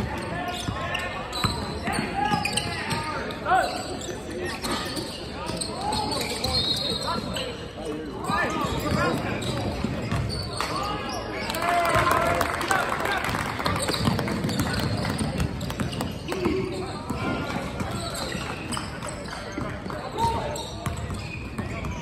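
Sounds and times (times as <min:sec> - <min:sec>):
sneaker squeaks: 0:00.0 - 0:11.4, 0:13.6 - 0:22.0.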